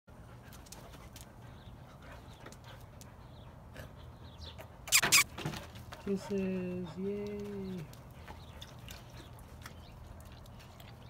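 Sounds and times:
dogs sniffing: 0.3s - 5.2s.

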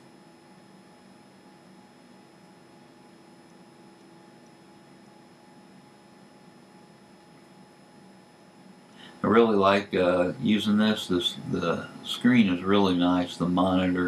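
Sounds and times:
quiet hum: 0.0s - 14.0s.

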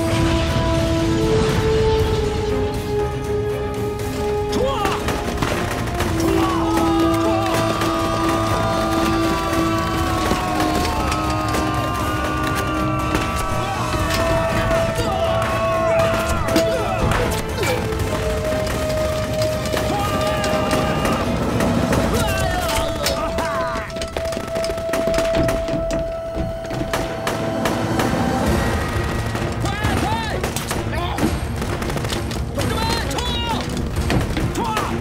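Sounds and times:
dramatic background music: 0.0s - 35.0s
men shouting: 4.5s - 24.0s
gunshots: 4.8s - 25.6s, 26.8s - 33.2s.

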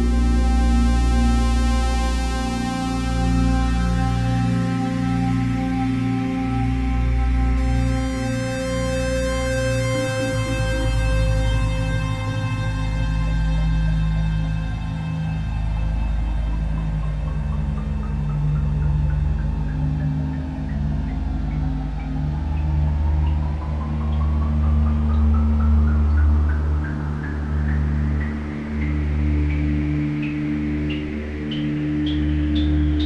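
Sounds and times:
low synthesizer drones: 0.0s - 33.0s.

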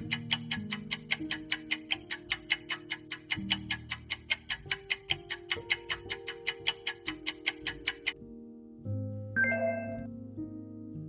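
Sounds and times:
soft background music chords: 0.0s - 2.4s, 4.6s - 11.0s
clock ticking sound effect: 0.0s - 8.2s.

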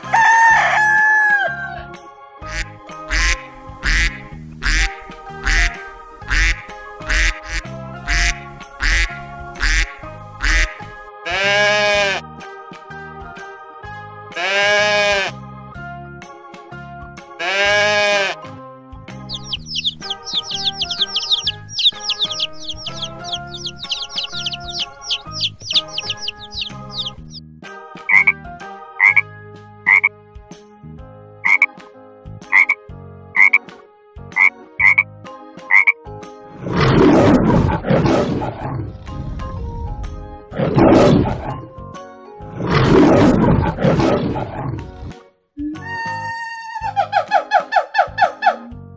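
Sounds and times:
children's background music: 0.0s - 48.9s
goat bleating: 11.3s - 12.2s, 14.4s - 15.4s, 17.4s - 18.5s
chicks peeping: 19.2s - 27.4s
lion roaring: 36.6s - 41.7s, 42.5s - 45.1s.

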